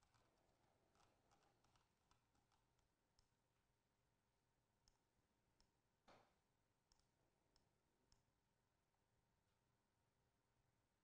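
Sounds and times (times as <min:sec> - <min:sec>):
computer mouse clicks: 0:06.9 - 0:08.3.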